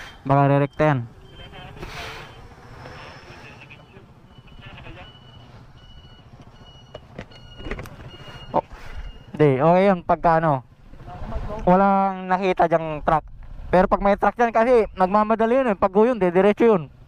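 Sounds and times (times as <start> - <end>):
passing traffic: 0.0 - 17.0
short high electronic beeps: 3.5 - 9.4.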